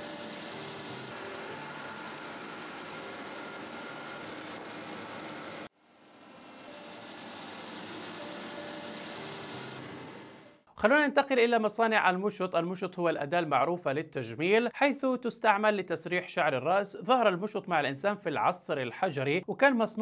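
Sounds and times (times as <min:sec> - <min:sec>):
polishing wheel whirring on metal: 0:00.0 - 0:10.6.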